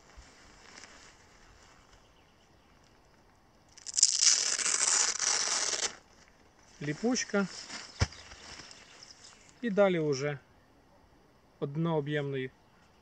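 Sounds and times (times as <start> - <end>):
velcro strip tearing: 3.8 - 6.0.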